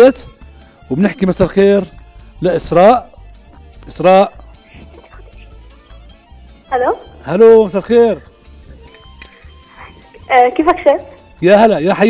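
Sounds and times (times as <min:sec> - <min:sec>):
faint background music: 0:00.0 - 0:12.0
man speaking: 0:00.9 - 0:03.2, 0:03.9 - 0:05.6, 0:07.2 - 0:08.3, 0:11.4 - 0:12.0.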